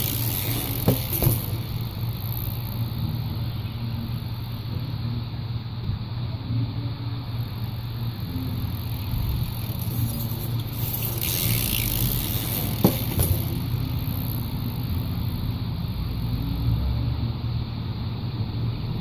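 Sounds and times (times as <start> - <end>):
street traffic hum: 0.0 - 19.0.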